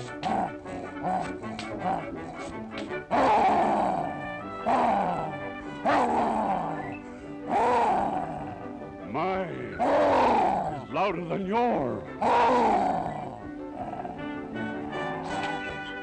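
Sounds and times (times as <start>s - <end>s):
person imitating lion roars: 0.0s - 2.2s, 3.1s - 6.9s, 7.5s - 8.6s, 9.7s - 10.9s, 12.2s - 14.2s.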